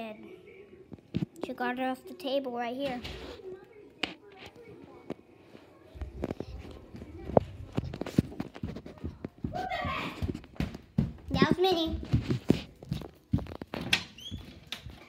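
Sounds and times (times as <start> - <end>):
footsteps on hardwood floor: 4.1 - 15.0.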